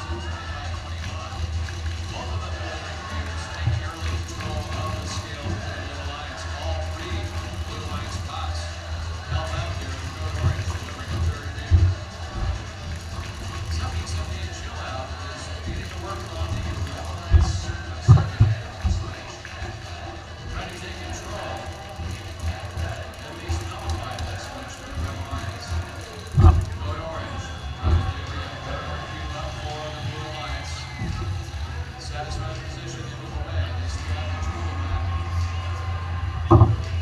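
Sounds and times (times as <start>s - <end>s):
indistinct crowd chatter: 0.0s - 37.0s.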